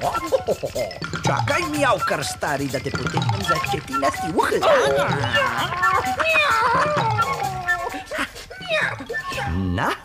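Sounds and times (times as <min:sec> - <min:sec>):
background music: 0:00.0 - 0:10.0
animal cries gliding in pitch: 0:05.0 - 0:08.1.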